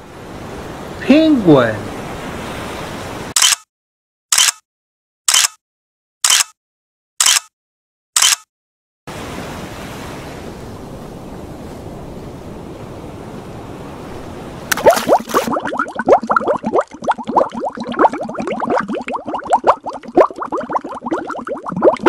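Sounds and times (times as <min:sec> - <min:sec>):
ocean surf rushing: 0:00.0 - 0:03.4, 0:09.1 - 0:16.1
camera shutter clicks: 0:03.4 - 0:03.6, 0:04.3 - 0:04.6, 0:05.3 - 0:05.6, 0:06.2 - 0:06.6, 0:07.2 - 0:07.5, 0:08.2 - 0:08.5.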